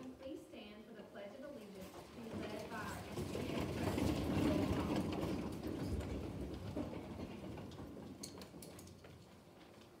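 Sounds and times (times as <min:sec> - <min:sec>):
audience shuffling and rustling: 0:01.5 - 0:10.0.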